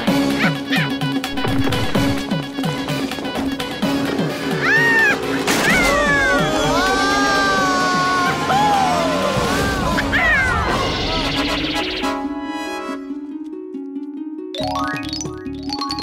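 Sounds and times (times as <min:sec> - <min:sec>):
quick rhythmic cartoon music: 0:00.0 - 0:07.6, 0:10.1 - 0:16.0.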